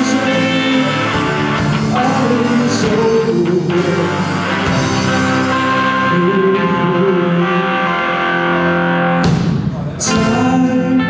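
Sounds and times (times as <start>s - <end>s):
live rock band playing: 0.0s - 11.0s.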